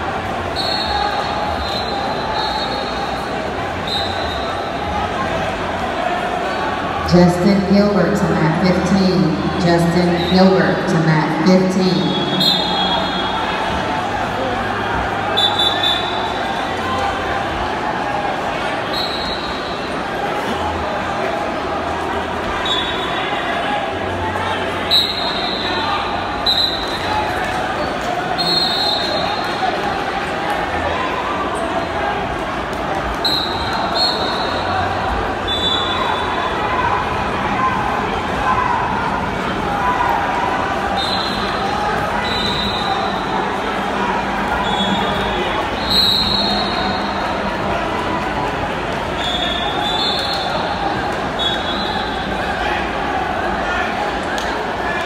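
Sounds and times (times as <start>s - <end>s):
crowd chatter and shouting: 0.0s - 55.0s.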